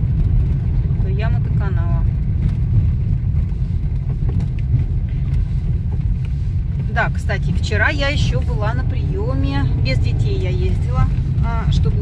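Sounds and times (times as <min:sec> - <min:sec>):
engine and tyre rumble: 0:00.0 - 0:12.0.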